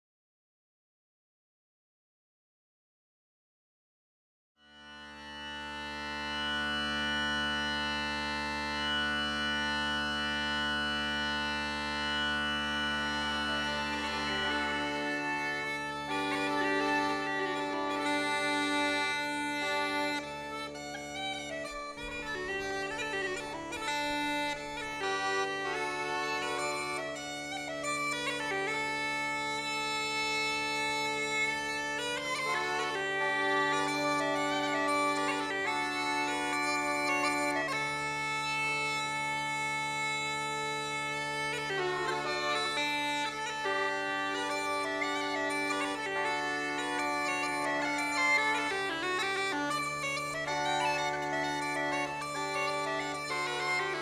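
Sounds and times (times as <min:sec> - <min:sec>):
bagpipes playing melody: 0:04.6 - 0:54.0.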